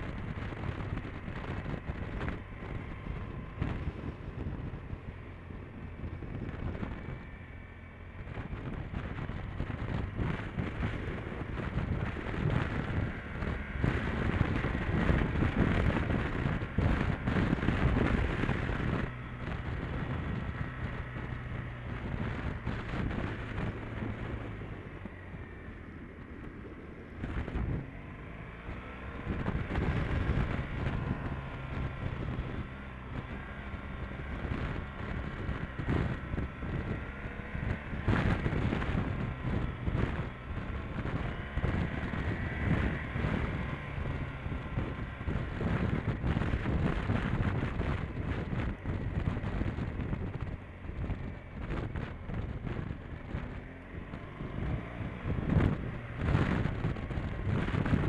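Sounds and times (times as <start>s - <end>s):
motorcycle engine running: 0.0s - 58.0s
wind buffeting microphone: 0.0s - 58.0s.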